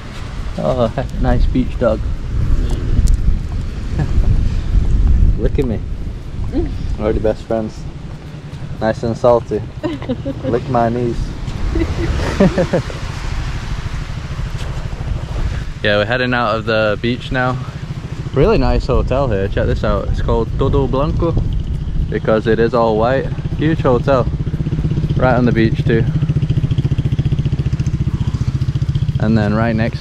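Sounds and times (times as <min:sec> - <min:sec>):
wind buffeting microphone: 0:00.0 - 0:30.0
small engine running: 0:06.2 - 0:30.0.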